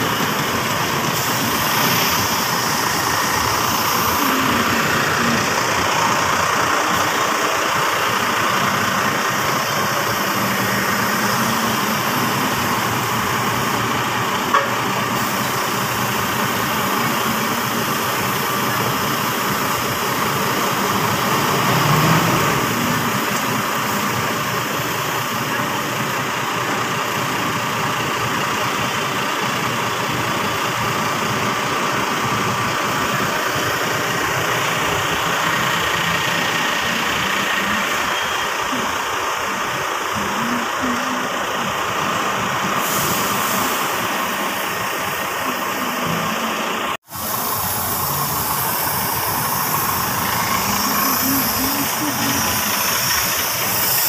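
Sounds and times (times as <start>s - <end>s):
diesel buses idling: 0.0s - 54.0s.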